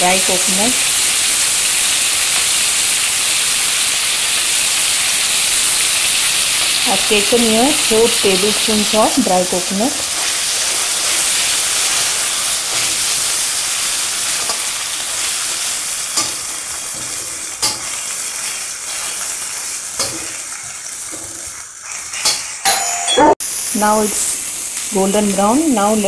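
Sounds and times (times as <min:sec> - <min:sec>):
food sizzling in oil: 0:00.0 - 0:26.0.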